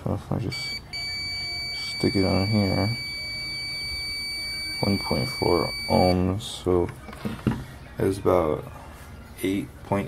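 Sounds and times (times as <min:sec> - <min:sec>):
high-pitched beeper tone: 0:00.5 - 0:06.2.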